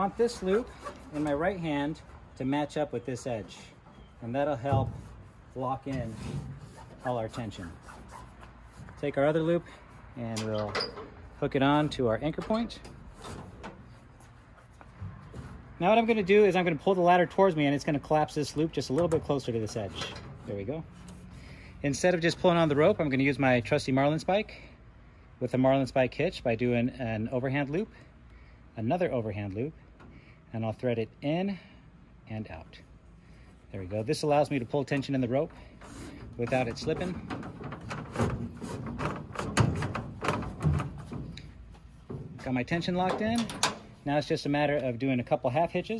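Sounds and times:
nylon cord rubbing: 0.0 - 2.3, 4.0 - 10.2, 33.6 - 42.6
ladder knocking against metal: 36.5 - 44.0.

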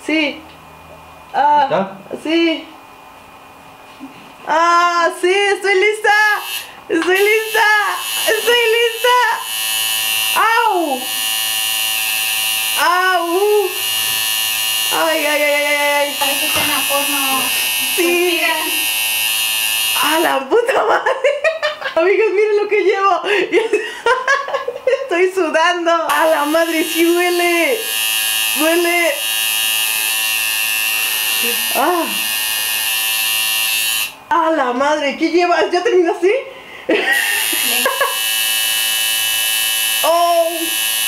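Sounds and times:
tattoo machine buzzing: 6.1 - 20.5, 26.1 - 34.3, 37.0 - 41.0.

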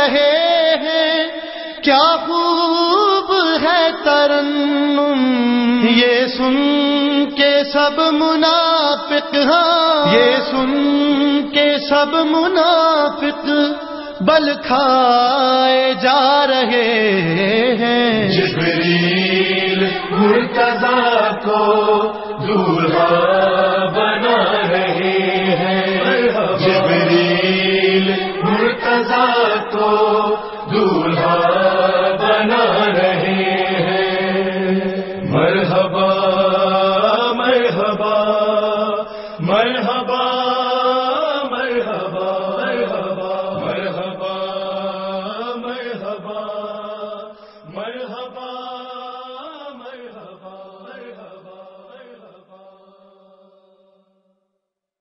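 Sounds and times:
voices chanting devotional chant: 0.0 - 54.0.

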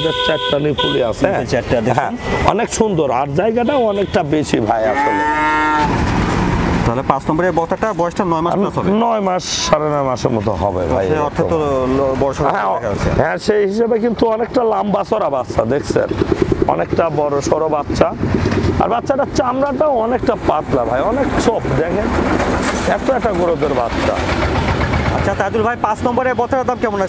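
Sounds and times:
cow mooing: 4.8 - 5.8.

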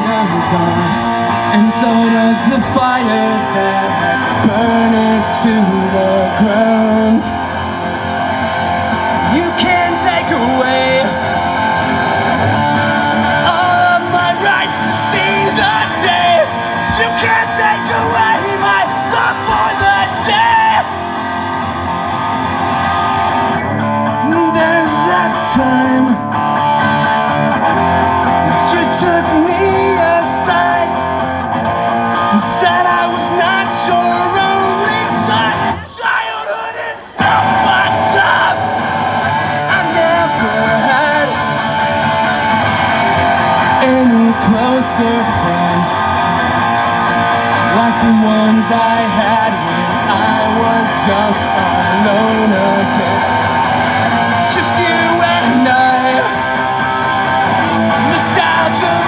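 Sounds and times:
man singing loudly: 0.0 - 7.9, 9.0 - 12.3, 13.0 - 21.2, 23.2 - 26.4, 27.7 - 31.3, 32.2 - 42.3, 43.0 - 56.6, 57.8 - 59.0
guitar strumming: 0.0 - 35.9, 37.2 - 59.0.

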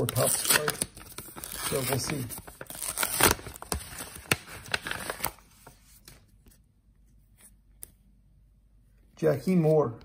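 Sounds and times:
paper envelope rustling: 0.0 - 6.6.

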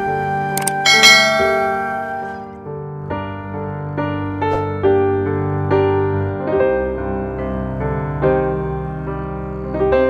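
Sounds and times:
soft piano music: 0.0 - 10.0
quick clicks: 0.6 - 0.8
bright bell ding: 0.9 - 2.4.

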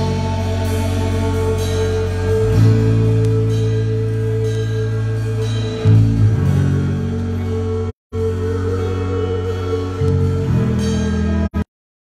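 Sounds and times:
band holding a chord: 0.0 - 11.6
sustained low bass note: 0.0 - 11.6.

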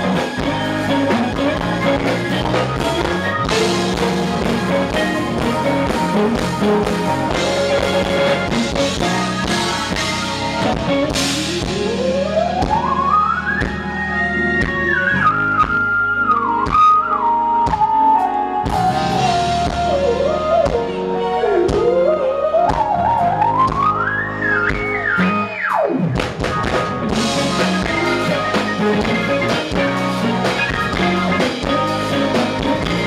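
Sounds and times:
smooth jazz band playing: 0.0 - 33.0.

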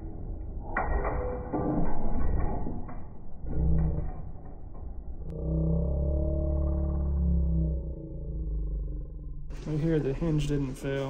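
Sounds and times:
steady low hum: 3.0 - 11.0.

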